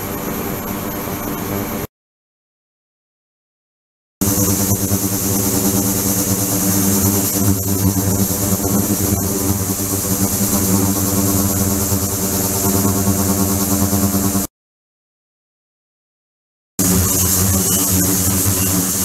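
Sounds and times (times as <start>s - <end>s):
ultrasonic tank hiss: 4.2s - 14.2s, 16.8s - 19.0s.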